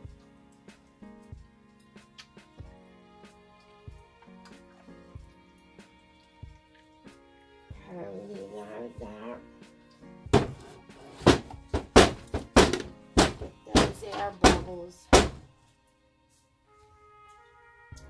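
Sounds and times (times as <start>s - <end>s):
wooden mold knocking on steel counter: 10.3s - 15.4s.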